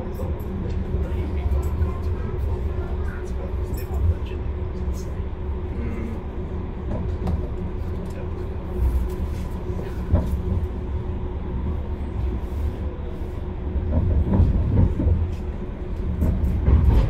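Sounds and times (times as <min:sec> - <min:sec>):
tram rumbling on track: 0:00.0 - 0:17.0.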